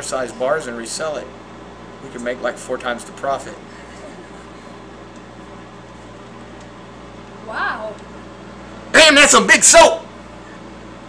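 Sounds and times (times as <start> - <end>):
microwave oven humming: 0.0 - 11.0.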